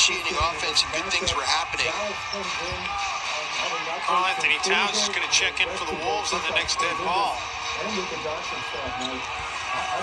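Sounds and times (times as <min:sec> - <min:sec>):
arena background music: 0:00.0 - 0:10.0
arena crowd noise: 0:00.0 - 0:10.0.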